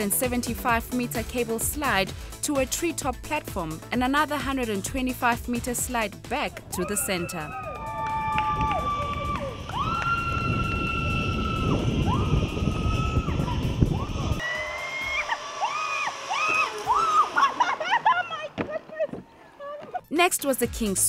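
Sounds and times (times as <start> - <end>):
zip line rushing: 6.6 - 20.0
woman screaming: 14.4 - 19.9.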